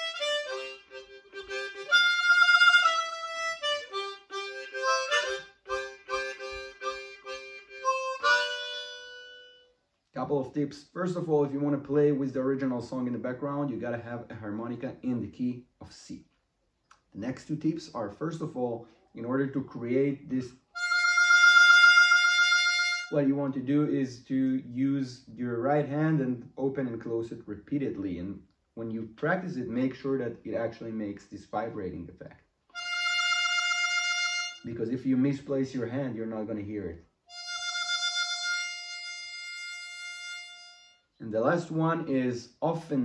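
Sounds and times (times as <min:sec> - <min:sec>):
harmonica note with hand vibrato: 0:00.0 - 0:09.8, 0:20.8 - 0:23.2, 0:32.8 - 0:34.7, 0:37.3 - 0:41.1.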